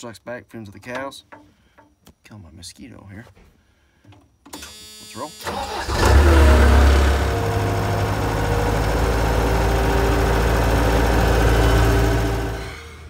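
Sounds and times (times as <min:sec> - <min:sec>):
skid steer engine running: 0:05.6 - 0:13.0.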